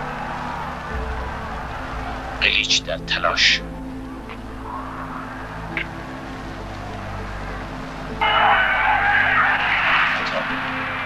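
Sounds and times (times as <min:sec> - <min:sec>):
stadium crowd roar: 0:00.0 - 0:11.0.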